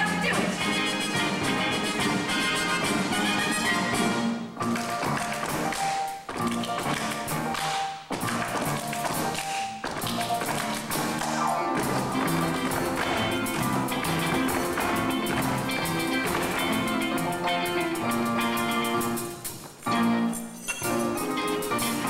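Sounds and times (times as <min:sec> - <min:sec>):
latin show tune instrumental: 0:00.0 - 0:22.0
dancers' foot stomps and taps: 0:04.6 - 0:17.6.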